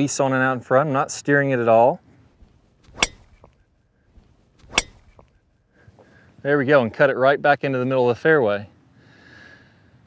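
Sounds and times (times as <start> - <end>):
golf club striking ball: 2.4 - 5.5.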